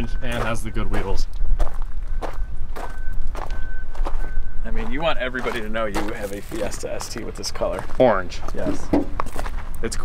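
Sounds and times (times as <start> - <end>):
footsteps on gravel: 0.0 - 10.0.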